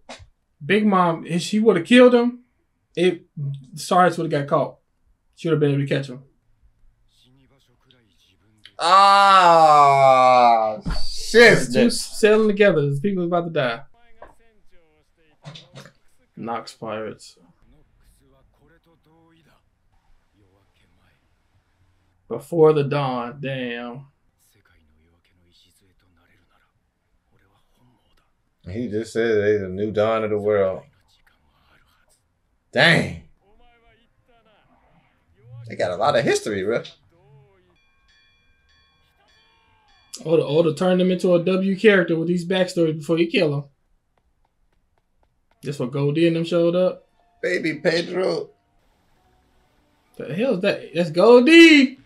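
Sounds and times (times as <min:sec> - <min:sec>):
man speaking: 0:00.6 - 0:02.4, 0:03.0 - 0:04.7, 0:05.4 - 0:06.2, 0:07.2 - 0:19.6, 0:22.3 - 0:24.0, 0:27.4 - 0:32.1, 0:32.8 - 0:34.6, 0:35.4 - 0:37.7, 0:40.2 - 0:43.6, 0:45.6 - 0:48.5, 0:50.2 - 0:52.0
faint high bell-like tones: 0:36.4 - 0:43.4, 0:47.0 - 0:49.4.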